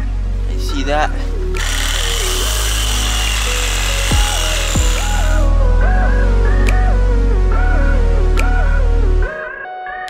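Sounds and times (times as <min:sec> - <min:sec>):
electronic music with bass line: 0:00.5 - 0:09.4
reciprocating saw cutting wood: 0:01.6 - 0:05.5.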